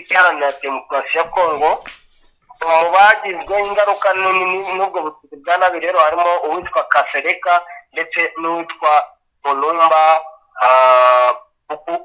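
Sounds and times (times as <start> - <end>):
voice passages: 0.0 - 12.0.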